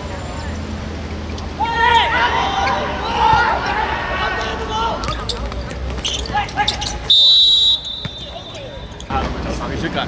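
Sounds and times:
players shouting: 0:01.5 - 0:09.1.

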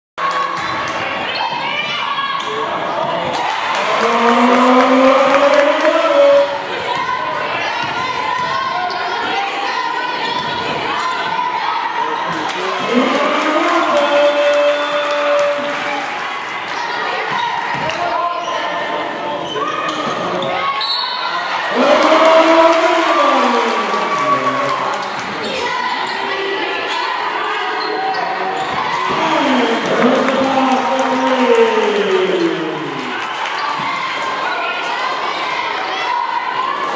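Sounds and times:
voices in a hall: 0:00.2 - 0:36.9.

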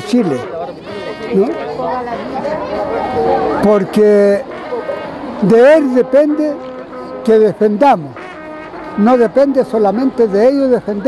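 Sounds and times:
people talking: 0:00.0 - 0:06.6, 0:09.0 - 0:11.0.

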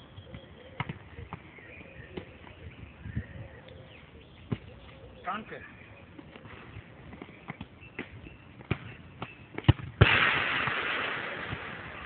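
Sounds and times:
football bouncing on hard court: 0:00.3 - 0:01.4.

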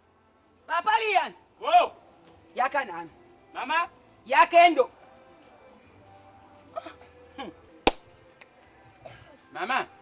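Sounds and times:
finger snap: 0:07.8 - 0:08.6.

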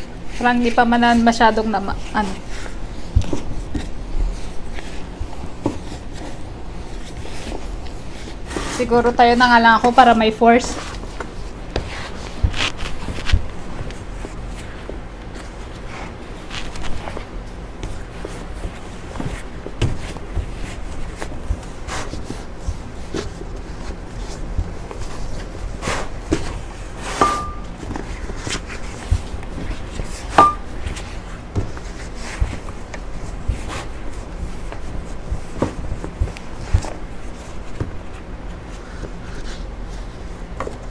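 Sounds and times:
dough bag thumping and rubbing: 0:11.7 - 0:14.1, 0:17.8 - 0:38.0.

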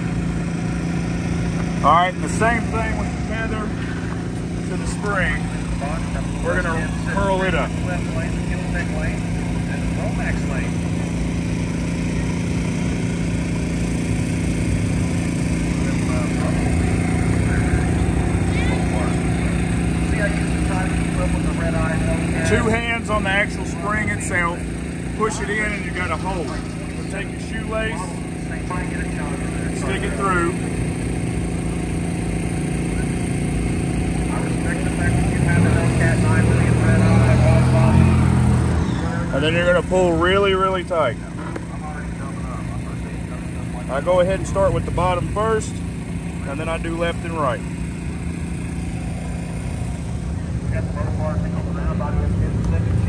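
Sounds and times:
small engine running steadily: 0:00.0 - 0:53.0.

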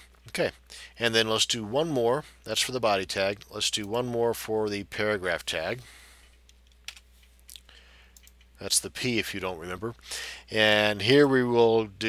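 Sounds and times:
low steady hum: 0:00.0 - 0:12.0
keyboard and mouse clicks: 0:06.3 - 0:08.5.

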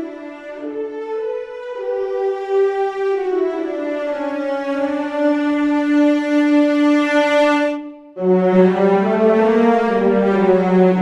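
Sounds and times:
sustained horn and cello note: 0:07.6 - 0:11.0.

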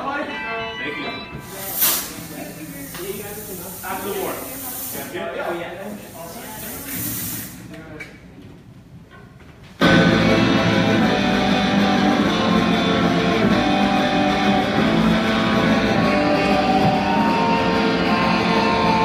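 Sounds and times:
voices: 0:00.0 - 0:08.6, 0:12.3 - 0:19.0
fog machine hissing: 0:01.4 - 0:07.7
live rock band: 0:09.8 - 0:19.0.

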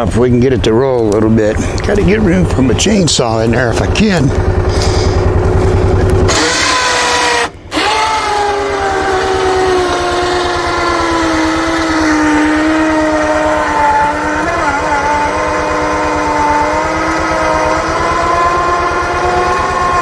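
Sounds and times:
low engine throb: 0:00.0 - 0:20.0
winch motor whining: 0:00.9 - 0:20.0.

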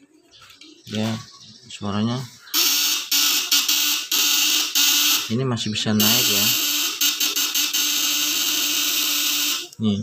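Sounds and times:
electrical buzzing: 0:02.6 - 0:05.4, 0:06.0 - 0:09.8.

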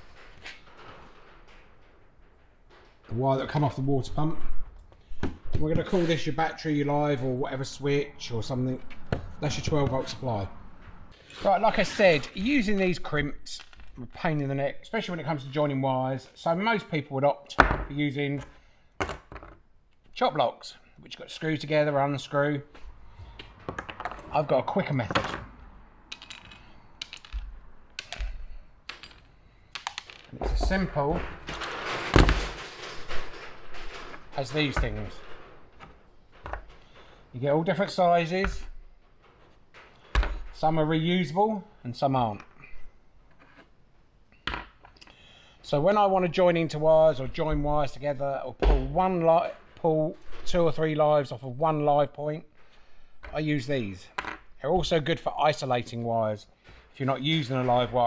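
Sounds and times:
plastic connectors clicking: 0:27.0 - 0:29.2.

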